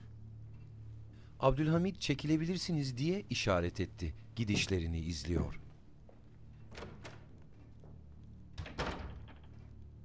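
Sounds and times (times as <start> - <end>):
low steady hum: 0.0 - 10.0
door closing with soft thunk: 8.6 - 9.6.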